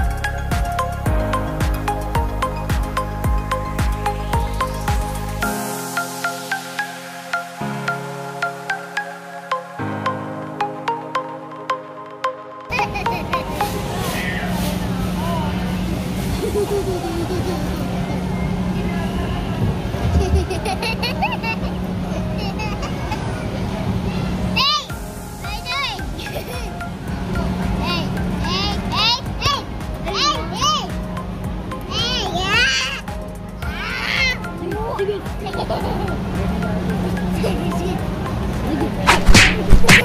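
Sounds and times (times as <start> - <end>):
voices chattering: 12.7 - 24.9
indistinct crowd chatter: 12.7 - 32.9, 33.7 - 40.0
child squealing with laughter: 33.8 - 34.4.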